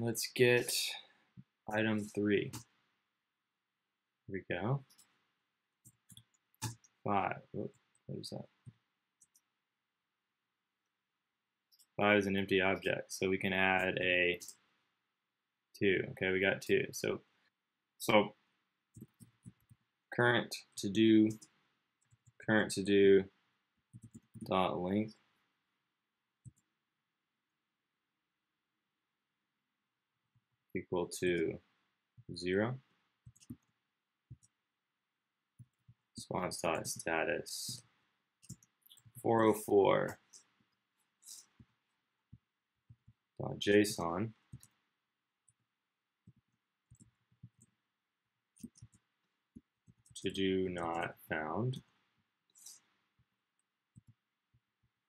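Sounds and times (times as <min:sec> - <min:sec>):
soft keyboard keystrokes: 0:33.2 - 0:33.7, 0:46.2 - 0:47.8, 0:48.6 - 0:50.2.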